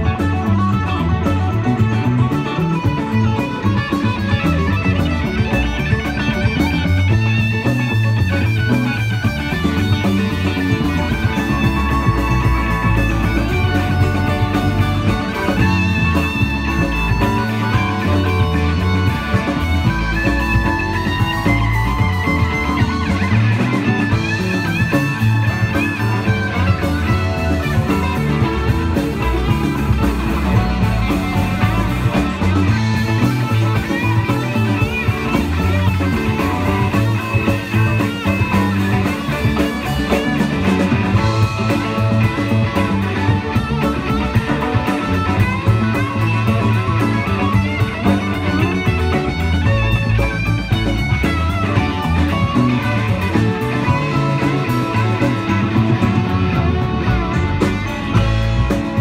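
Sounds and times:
drums: 0.0s - 59.0s
electric bass: 0.0s - 59.0s
electric guitars: 0.0s - 59.0s
keyboard: 0.0s - 59.0s.

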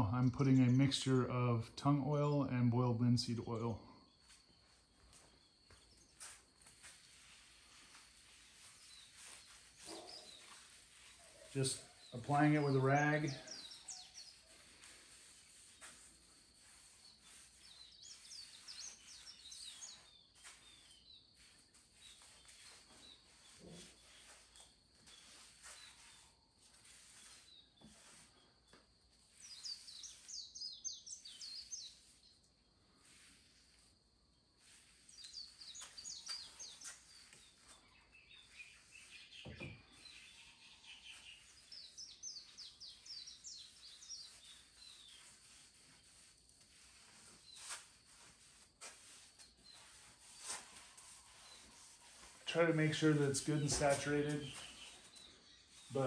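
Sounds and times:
birds chirping: 7.2s - 32.4s, 34.9s - 47.8s, 49.6s - 56.0s.

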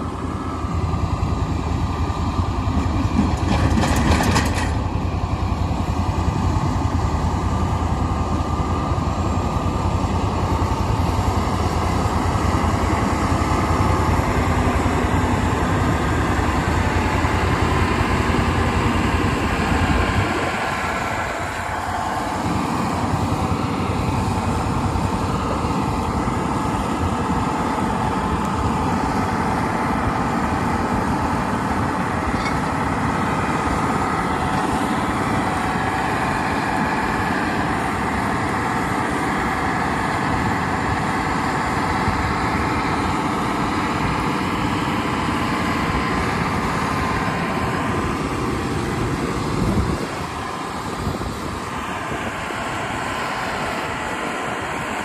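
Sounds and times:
tractor diesel engine running: 0.0s - 55.0s.

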